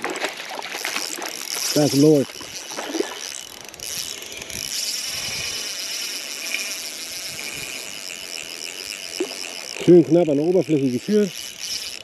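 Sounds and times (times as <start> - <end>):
spinning reel whirring and clicking: 0.0 - 12.0.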